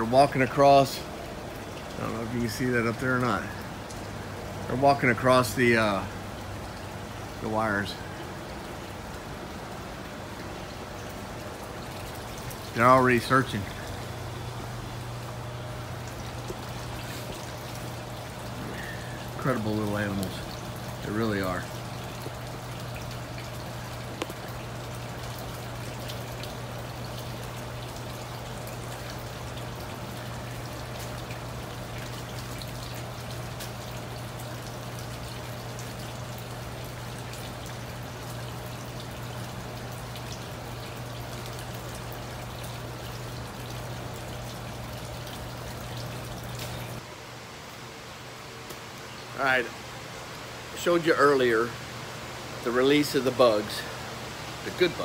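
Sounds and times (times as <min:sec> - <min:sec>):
steady low hum: 0:00.0 - 0:55.0
water trickling and splashing: 0:00.0 - 0:55.0.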